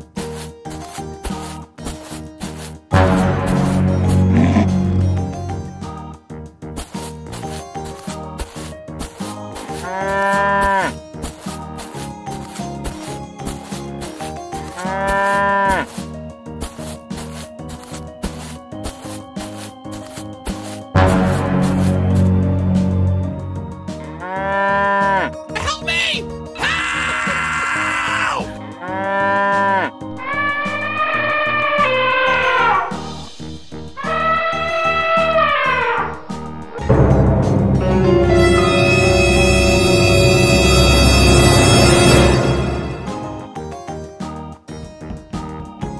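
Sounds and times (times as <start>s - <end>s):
background music: 0.0s - 45.9s
music with plucked bass line: 3.0s - 5.8s
cow mooing: 4.1s - 4.9s, 9.8s - 10.9s, 14.8s - 16.0s.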